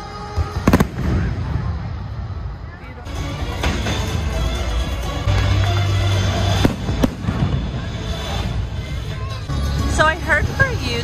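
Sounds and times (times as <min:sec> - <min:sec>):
fireworks bursting and crackling: 0:00.4 - 0:09.3
sharp firework bangs: 0:00.6 - 0:01.8, 0:06.5 - 0:08.2
loud show music: 0:02.8 - 0:11.0.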